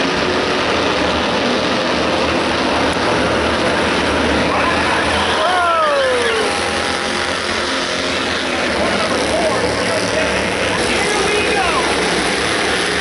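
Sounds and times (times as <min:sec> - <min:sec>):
stock car engines rumbling: 0:00.0 - 0:13.0
voice with falling pitch: 0:04.5 - 0:06.8.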